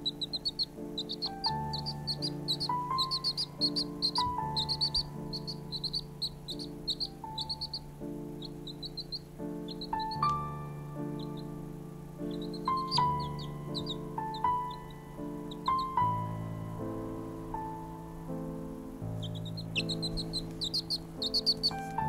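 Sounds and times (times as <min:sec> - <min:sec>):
baby chick peeping: 0:00.0 - 0:18.2, 0:18.8 - 0:22.0
keyboard chords music: 0:00.0 - 0:22.0.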